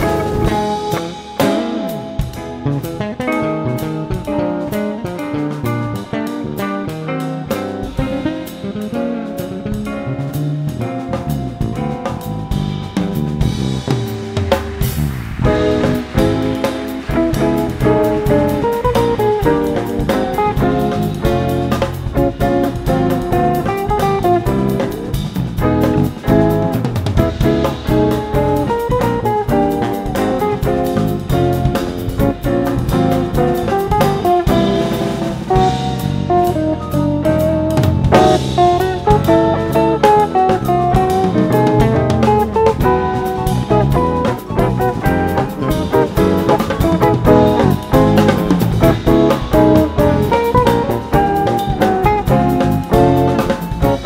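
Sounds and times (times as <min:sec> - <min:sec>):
electric jazz guitar melody: 0:00.0 - 0:54.0
jazz band playing: 0:00.0 - 0:54.0.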